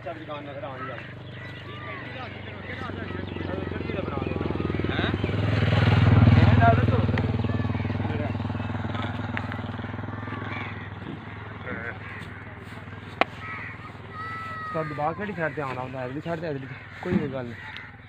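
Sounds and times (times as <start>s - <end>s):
men's voices: 0.0s - 18.0s
vehicle engine passing by: 0.4s - 17.6s.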